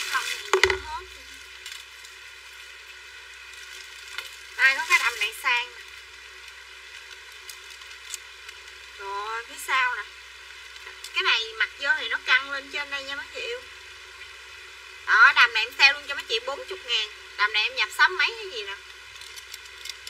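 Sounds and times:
woman's voice: 0:00.0 - 0:01.4, 0:04.6 - 0:05.8, 0:09.0 - 0:10.1, 0:11.2 - 0:13.7, 0:15.1 - 0:18.8
steady background hiss: 0:00.0 - 0:20.0.

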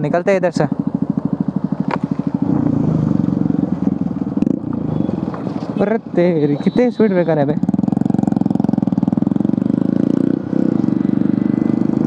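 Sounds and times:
motorcycle engine: 0:00.0 - 0:12.0.

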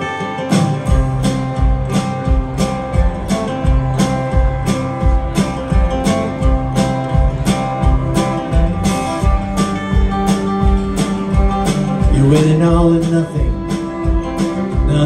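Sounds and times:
acoustic guitar strumming: 0:00.0 - 0:15.0
drums: 0:00.0 - 0:15.0
electric bass: 0:00.0 - 0:15.0
fiddle: 0:00.0 - 0:15.0.

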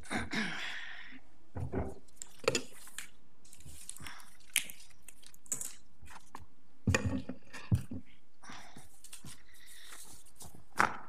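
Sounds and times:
shuffling and rustling: 0:08.7 - 0:10.8.

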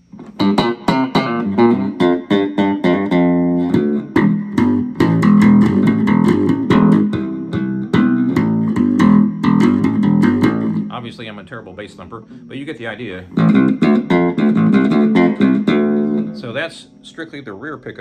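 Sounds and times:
electric bass funk line: 0:00.0 - 0:11.2, 0:13.2 - 0:16.6.

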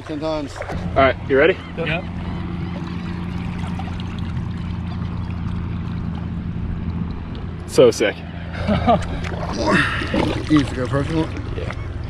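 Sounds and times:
water sloshing and trickling: 0:00.0 - 0:07.8, 0:08.8 - 0:12.0
low hum: 0:00.0 - 0:12.0.

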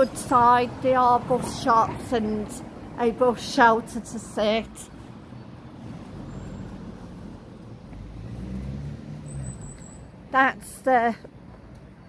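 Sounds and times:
vehicle engine rumble passing: 0:04.8 - 0:10.3.

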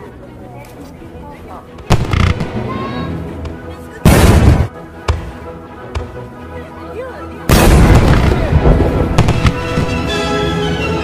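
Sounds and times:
background music: 0:00.0 - 0:11.0
crackling firework bangs: 0:01.9 - 0:02.6, 0:04.0 - 0:04.7, 0:07.5 - 0:10.1.

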